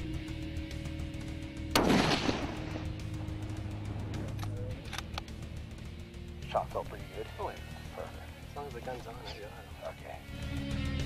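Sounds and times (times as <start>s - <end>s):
background music: 0.0s - 11.0s
rifle shot: 1.7s - 3.1s.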